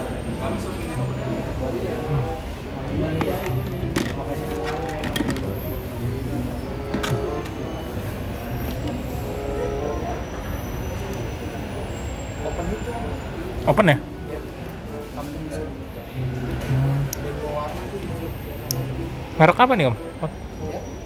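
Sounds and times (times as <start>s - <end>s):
indistinct background voices: 0.0s - 21.0s
plastic boxes being handled: 3.1s - 5.6s.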